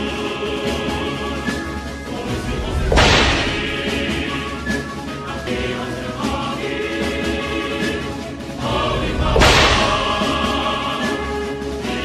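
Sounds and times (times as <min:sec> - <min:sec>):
choral music: 0:00.0 - 0:12.0
loud noisy hit effect: 0:02.3 - 0:04.3, 0:09.0 - 0:10.4.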